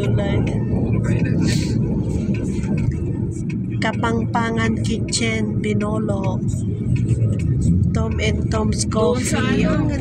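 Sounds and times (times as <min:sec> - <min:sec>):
vehicle rumble from inside: 0:00.0 - 0:10.0.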